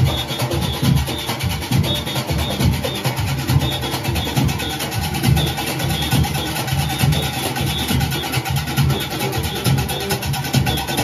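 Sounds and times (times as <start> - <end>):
cowbells clanging: 0.0 - 11.0
drums booming in a fast beat: 0.0 - 11.0.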